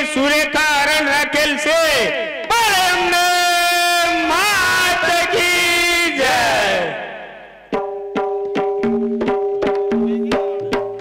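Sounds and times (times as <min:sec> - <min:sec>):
vocal call through pa with echo: 0:00.0 - 0:11.0
tabla strokes: 0:07.1 - 0:11.0.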